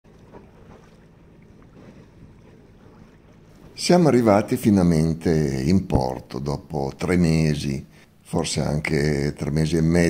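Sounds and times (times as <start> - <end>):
low wind rumble: 0.1 - 9.9.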